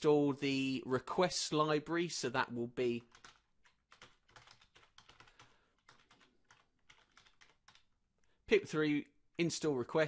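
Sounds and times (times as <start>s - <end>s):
typing on computer keyboard: 3.0s - 8.0s.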